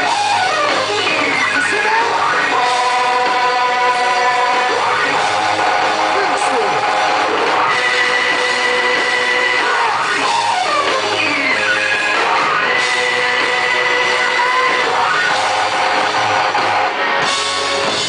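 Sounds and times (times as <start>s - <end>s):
rock and roll band playing live: 0.0s - 18.0s.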